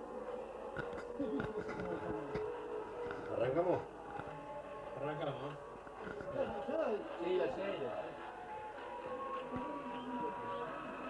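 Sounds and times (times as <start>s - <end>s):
indistinct voices: 0.0s - 11.0s
music: 0.0s - 11.0s.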